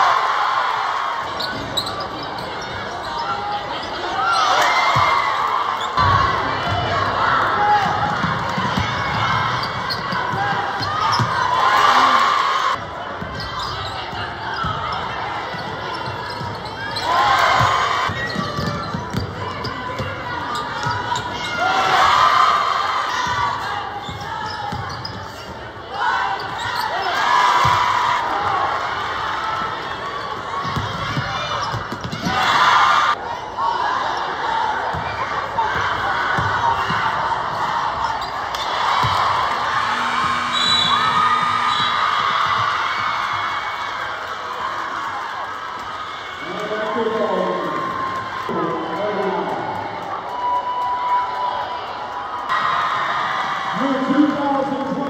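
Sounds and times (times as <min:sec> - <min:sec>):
crowd noise and cheers: 0:00.0 - 0:55.0.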